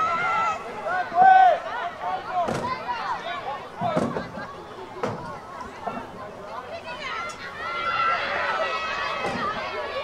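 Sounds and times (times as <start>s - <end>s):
people shouting and calling: 0.0s - 4.6s, 6.5s - 10.0s.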